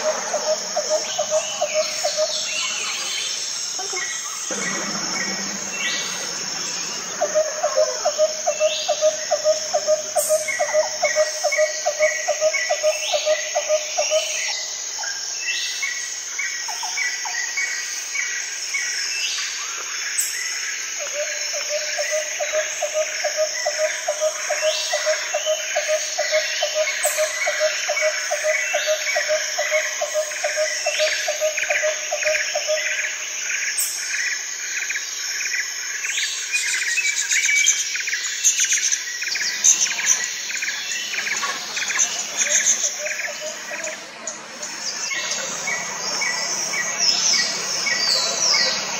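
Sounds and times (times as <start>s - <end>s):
birds chirping: 0.0s - 14.8s, 36.3s - 48.9s
high-pitched insect chorus: 0.0s - 48.9s.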